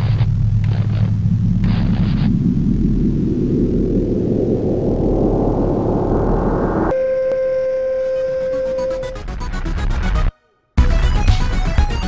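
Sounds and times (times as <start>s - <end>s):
dense rumbling noise: 0.0s - 7.0s
electronic test-tone beep: 6.9s - 9.2s
electronic music with pulsing beat: 8.1s - 12.0s.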